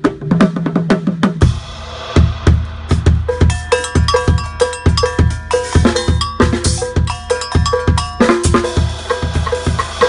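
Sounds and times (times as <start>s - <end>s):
bass drum and snare hits: 0.0s - 10.0s
double bell struck: 3.4s - 9.6s.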